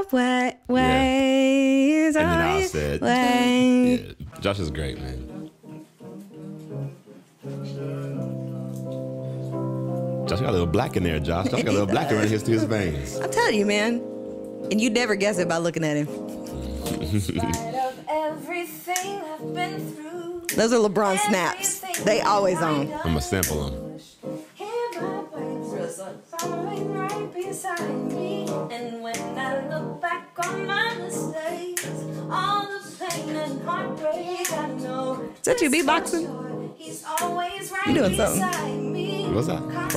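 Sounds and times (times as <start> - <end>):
demo music playback: 0.6 - 1.4, 2.1 - 39.9
person singing: 0.6 - 5.4, 10.3 - 13.4, 16.2 - 23.9, 37.8 - 39.9
guitar accompaniment: 0.7 - 39.9
finger snaps: 16.8 - 17.7, 18.9 - 19.2, 23.4 - 23.7, 26.4 - 29.4, 30.4 - 30.6, 31.7 - 32.0, 33.1 - 33.4, 37.2 - 37.4, 38.4 - 38.8.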